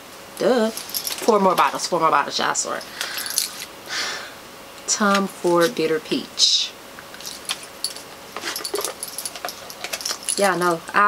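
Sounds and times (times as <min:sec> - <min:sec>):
bracelets clinking: 0:00.7 - 0:01.8, 0:02.7 - 0:03.7, 0:07.1 - 0:10.8.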